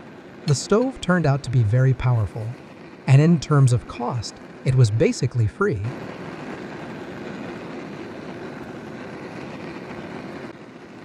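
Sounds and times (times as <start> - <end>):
fuel burner roaring: 0.0 - 11.0.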